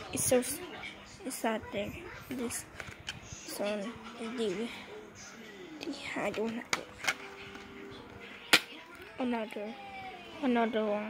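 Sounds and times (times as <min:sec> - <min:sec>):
plastic disc case clicks: 0:06.3 - 0:07.7.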